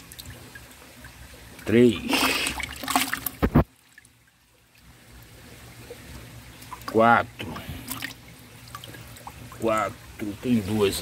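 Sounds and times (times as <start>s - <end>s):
water splashing in a plastic bucket: 0.0s - 5.0s, 5.6s - 11.0s.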